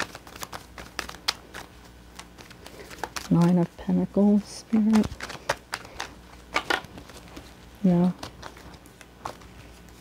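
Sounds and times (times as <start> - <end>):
cards shuffled by hand: 0.0 - 10.0.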